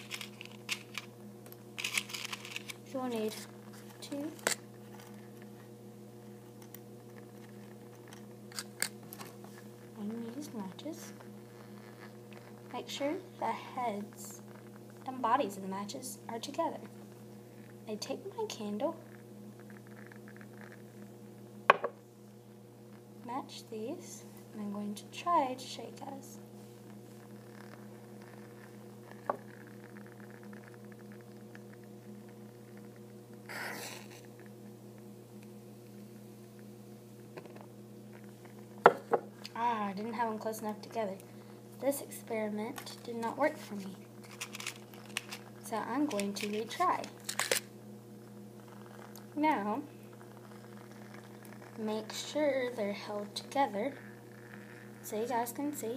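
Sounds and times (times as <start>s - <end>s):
matchbox rustling: 0.0s - 1.1s, 1.8s - 5.2s, 43.7s - 47.7s
faint steady hum: 0.0s - 55.9s
small knock: 21.7s - 22.0s.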